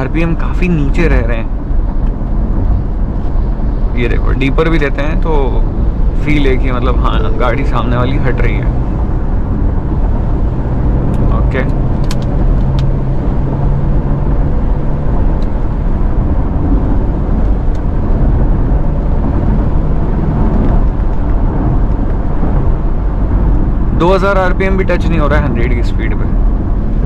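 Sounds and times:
car engine low hum: 0.0s - 27.0s
tyre and road noise: 0.0s - 27.0s.

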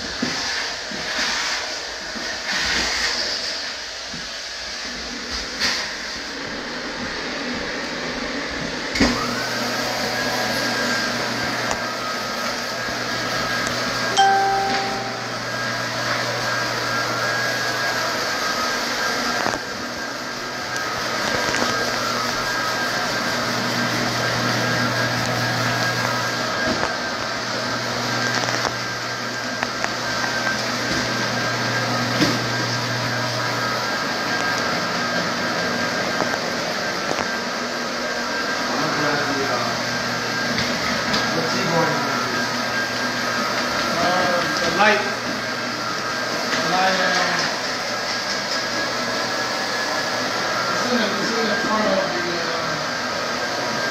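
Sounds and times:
floor buffer motor humming: 0.0s - 53.9s
two-note tone: 14.2s - 15.8s.

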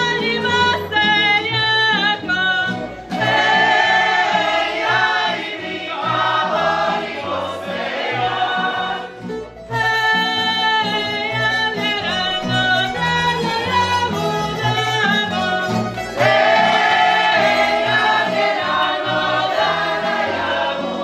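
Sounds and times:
women singing in unison: 3.2s - 9.1s, 10.1s - 21.0s
string band with plucked bass: 7.8s - 21.0s.

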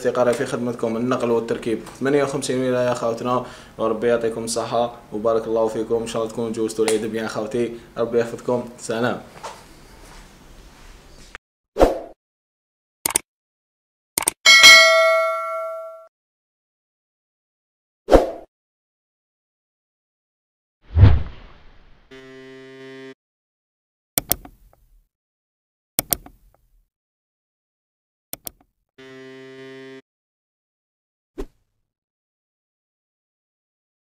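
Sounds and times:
bright bell ding: 14.5s - 16.1s
mouse double click: 24.2s - 24.5s, 26.0s - 26.4s, 28.3s - 28.6s.

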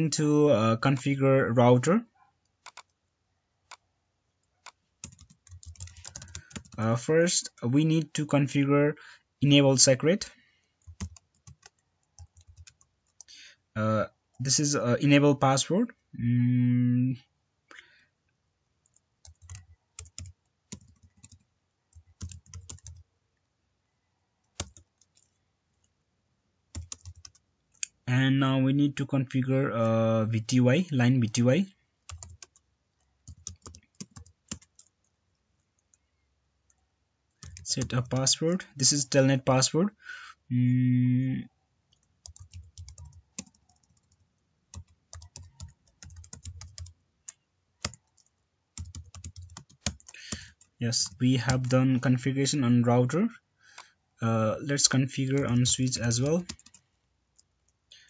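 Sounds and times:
typing on computer keyboard: 2.6s - 3.0s, 4.6s - 6.8s, 10.8s - 13.3s, 18.8s - 23.0s, 24.5s - 25.3s, 26.7s - 27.8s, 32.0s - 35.0s, 37.4s - 38.3s, 41.9s - 51.8s, 55.4s - 56.8s.

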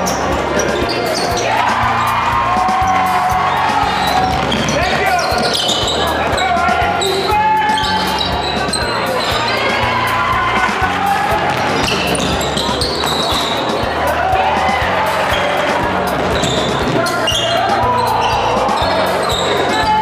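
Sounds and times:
voices of players and spectators: 0.0s - 20.0s.

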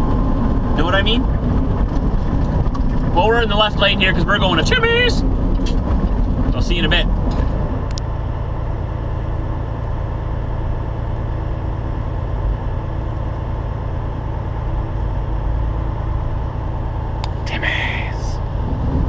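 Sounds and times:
diesel truck engine drone: 0.0s - 19.0s
road and cab noise: 0.0s - 19.0s.

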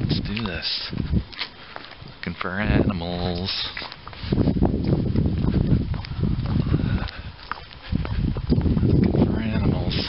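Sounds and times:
footsteps: 0.0s - 10.0s.

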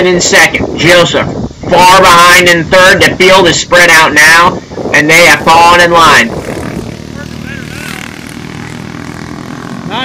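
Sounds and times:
distant kart engines: 5.0s - 10.0s.

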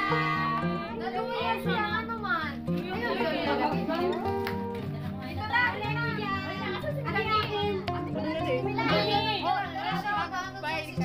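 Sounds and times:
people calling out excitedly: 0.0s - 4.3s
background music with held notes: 0.0s - 11.0s.

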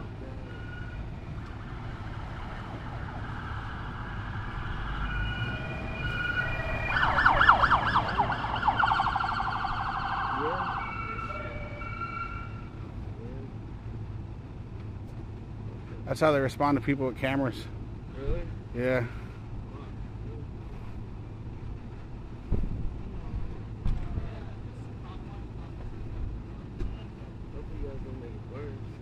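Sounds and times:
police sirens wailing and warbling: 0.4s - 12.8s.

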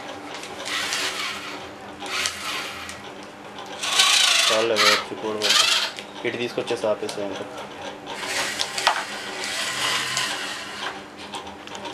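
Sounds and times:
small gear motor whirring: 0.6s - 3.0s, 3.8s - 6.0s, 8.1s - 11.0s.

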